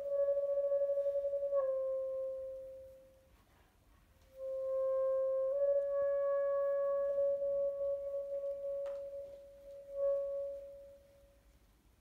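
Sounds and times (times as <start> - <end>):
bass clarinet holding a note: 0.0 - 3.3, 4.3 - 11.5.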